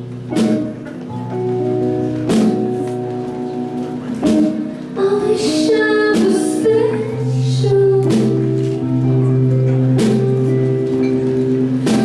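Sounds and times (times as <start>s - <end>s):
drum and cymbal hits: 0.0s - 5.0s, 6.1s - 12.0s
rock band playing: 0.0s - 12.0s.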